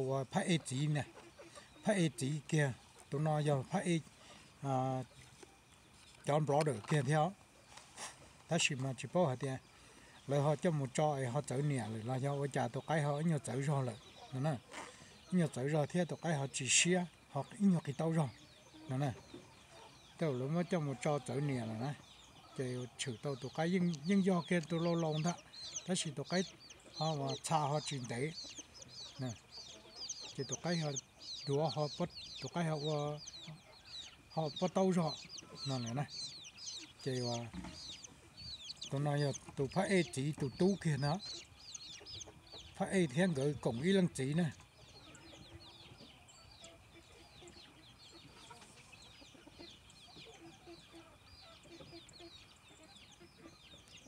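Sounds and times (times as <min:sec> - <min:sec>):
faint high-pitched chirping: 0:00.0 - 0:54.0
roosters clucking: 0:00.0 - 0:54.0.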